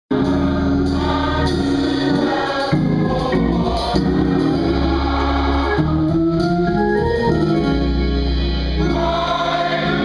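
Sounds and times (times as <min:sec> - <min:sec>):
gospel choir singing chords: 0:00.1 - 0:10.0.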